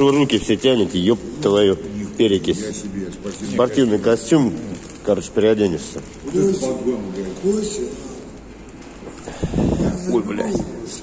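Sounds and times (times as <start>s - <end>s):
plastic bag handled: 0.0s - 10.9s.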